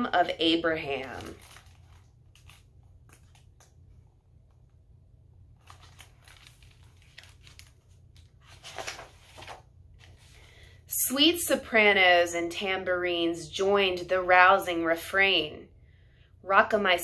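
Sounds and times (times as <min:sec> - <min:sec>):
book pages rustling: 0:00.6 - 0:04.8, 0:05.5 - 0:10.5.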